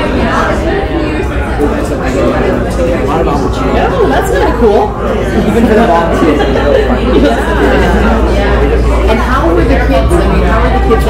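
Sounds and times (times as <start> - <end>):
overlapping conversation: 0.0 - 11.0.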